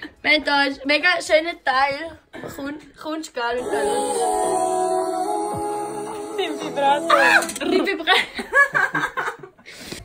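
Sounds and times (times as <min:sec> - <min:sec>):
held musical chord: 0:03.6 - 0:07.8
high swooping vocal sounds: 0:03.6 - 0:08.0
women speaking: 0:05.6 - 0:08.4.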